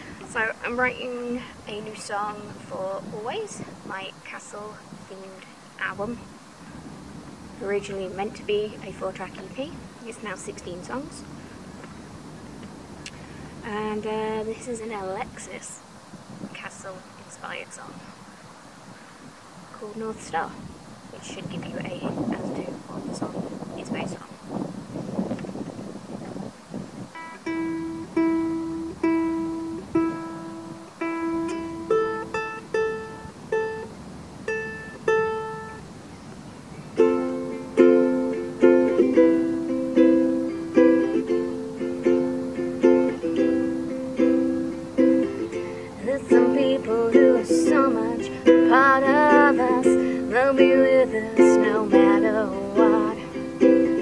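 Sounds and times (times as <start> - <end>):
ukulele playing: 27.2 - 35.8, 37.0 - 54.0
person singing: 45.0 - 54.0.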